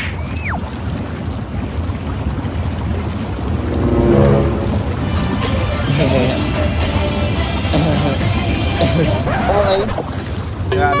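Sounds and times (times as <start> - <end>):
jacuzzi jets bubbling: 0.0 - 11.0
brief pitched sound: 3.3 - 5.5
falling whistle-like tone: 3.4 - 5.4.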